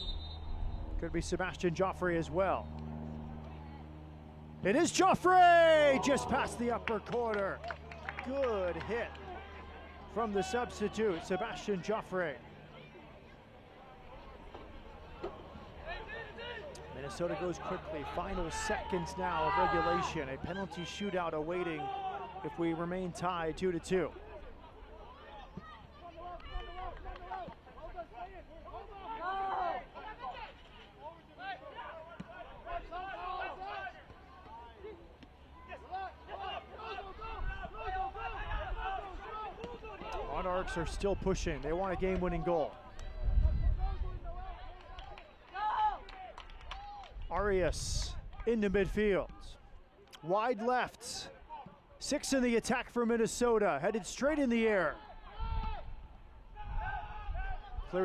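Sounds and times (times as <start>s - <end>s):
distant players shouting: 0.0s - 13.0s, 13.8s - 42.8s, 53.6s - 58.0s
low outdoor rumble: 0.0s - 45.2s
overlapping chatter: 1.6s - 48.5s.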